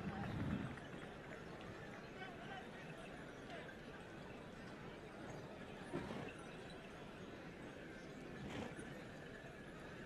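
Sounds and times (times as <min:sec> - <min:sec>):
horses walking slowly: 0:00.0 - 0:10.0.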